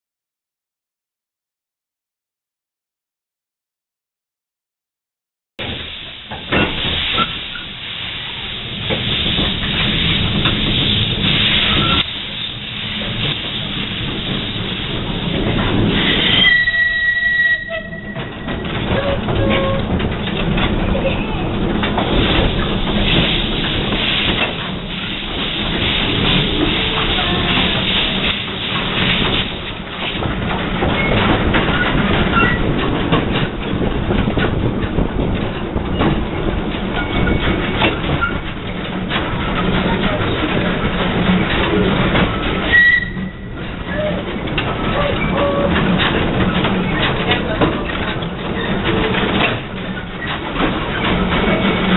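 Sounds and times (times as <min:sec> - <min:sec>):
steam hissing: 0:05.6 - 0:17.0, 0:21.4 - 0:31.1
steam locomotive running: 0:05.6 - 0:51.9
wheels clicking over rails: 0:05.6 - 0:51.9
wheels squealing on curve: 0:11.5 - 0:12.1, 0:15.9 - 0:19.9, 0:42.4 - 0:44.2.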